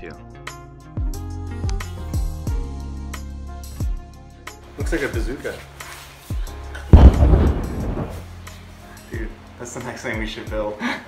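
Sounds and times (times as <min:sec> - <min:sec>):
background music: 0:00.0 - 0:11.0
loud boom: 0:07.0 - 0:08.3.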